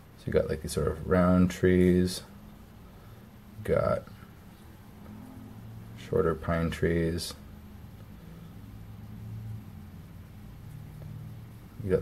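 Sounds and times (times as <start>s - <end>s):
faint low hum with hiss: 0.0s - 12.0s.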